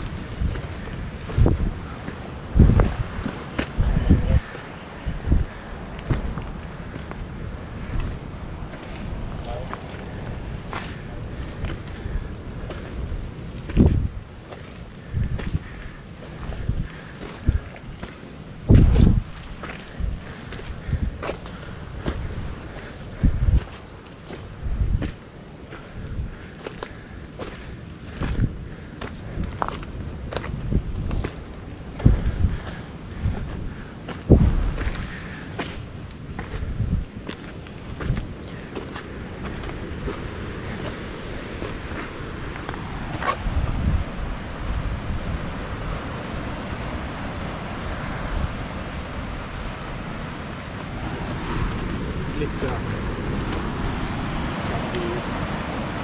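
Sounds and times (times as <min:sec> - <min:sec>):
steady rushing noise: 0:00.0 - 0:56.0.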